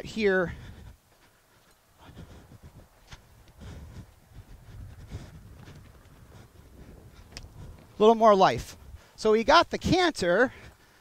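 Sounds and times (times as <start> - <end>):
horse hoofbeats on sand: 2.1 - 8.8.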